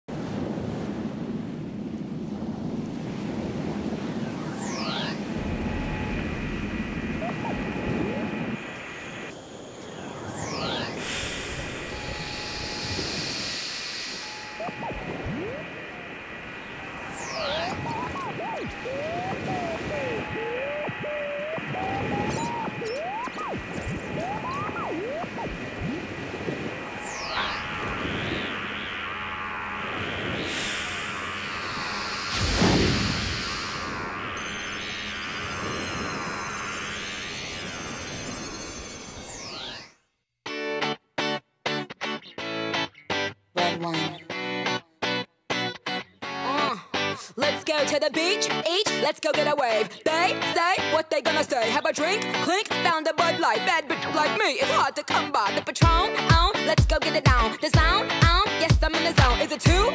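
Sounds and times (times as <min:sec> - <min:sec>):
steady high hum: 0:03.5 - 0:39.6
wavering sliding whale-like tones: 0:04.1 - 0:40.0
falling whistle sweeps: 0:04.2 - 0:06.6, 0:09.8 - 0:15.8, 0:16.6 - 0:26.0, 0:26.8 - 0:40.0
low electronic rumble: 0:05.3 - 0:08.7.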